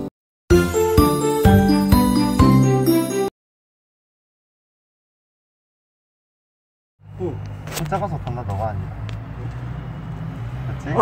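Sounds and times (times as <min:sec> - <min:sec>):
intro music: 0:00.0 - 0:03.3.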